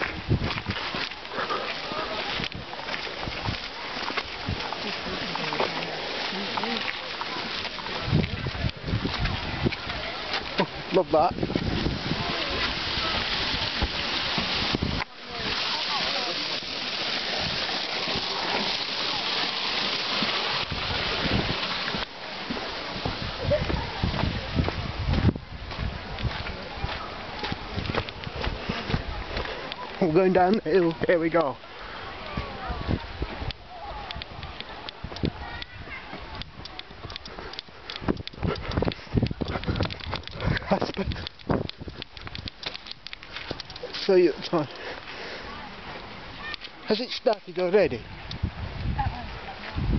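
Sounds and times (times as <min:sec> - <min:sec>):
footsteps on grass: 0:00.0 - 0:31.6
faint background voices: 0:01.0 - 0:31.0, 0:44.7 - 0:47.0
steady hiss: 0:11.4 - 0:23.4.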